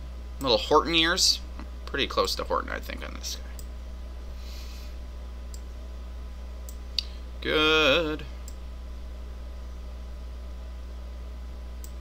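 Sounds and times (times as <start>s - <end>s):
low electrical hum: 0.0s - 12.0s
computer mouse clicks: 11.8s - 12.0s.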